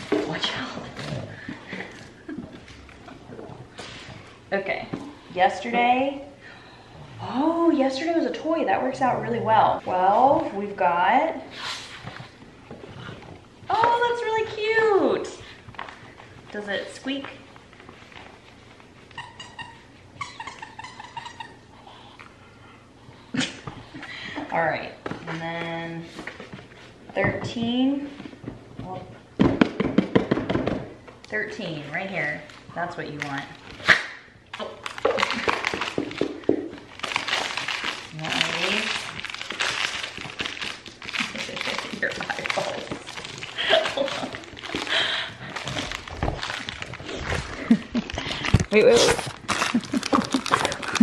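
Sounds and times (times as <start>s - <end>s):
dog toy squeaking: 19.1s - 21.6s
packaging crinkling and rustling: 34.5s - 51.0s.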